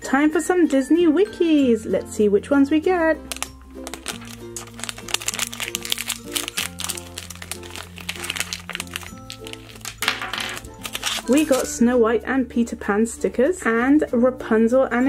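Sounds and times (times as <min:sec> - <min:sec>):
background music: 0:00.0 - 0:15.0
plastic packet crinkling and tearing: 0:03.3 - 0:11.7.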